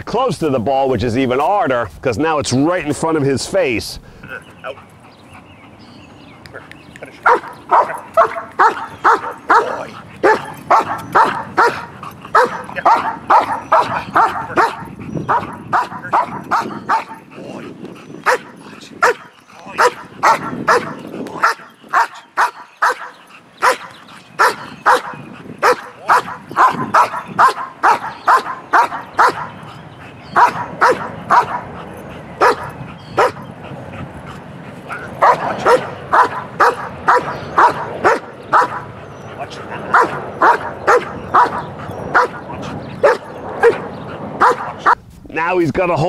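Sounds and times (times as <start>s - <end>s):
dog barking: 7.2s - 17.2s, 18.2s - 29.6s, 30.4s - 31.8s, 32.4s - 33.4s, 34.9s - 38.9s, 39.8s - 45.0s.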